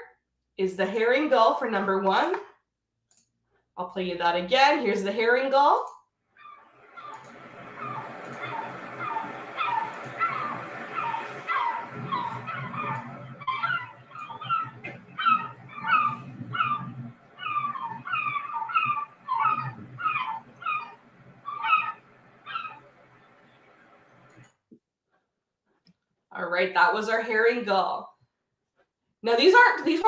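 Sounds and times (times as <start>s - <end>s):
gull calling: 6.4s - 22.9s.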